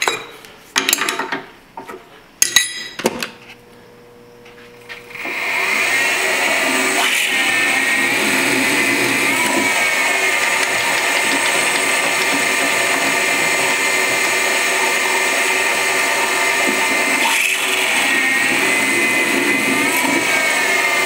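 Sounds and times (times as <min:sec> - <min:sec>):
milling machine whine: 0:04.9 - 0:21.0.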